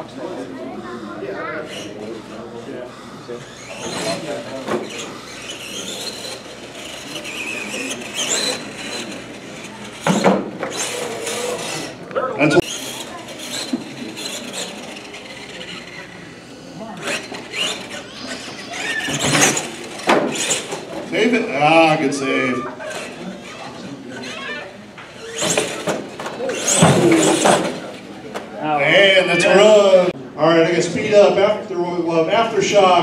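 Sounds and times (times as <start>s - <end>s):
toy truck motor whining: 0.8s - 28.1s
tyre squeal: 3.5s - 9.8s, 17.0s - 20.7s
toy truck crashing and tumbling: 3.5s - 12.0s, 12.6s - 16.1s, 17.0s - 21.0s, 25.2s - 28.0s.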